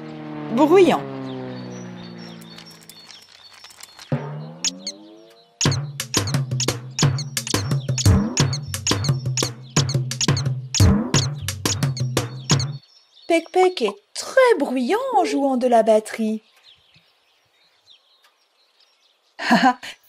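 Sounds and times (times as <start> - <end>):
cartoon airplane engine hum: 0.0 - 12.8
fast uneven toy drumbeats: 5.6 - 12.8.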